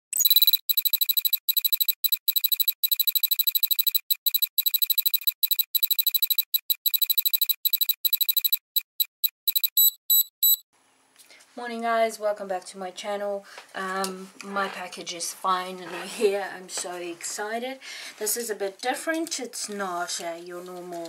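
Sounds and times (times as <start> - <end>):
rapid high-pitched electronic beeping: 0.1 - 10.6.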